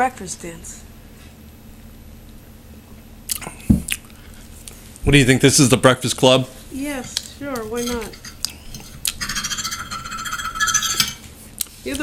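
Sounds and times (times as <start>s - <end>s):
fork scraping on plate: 7.8s - 11.3s.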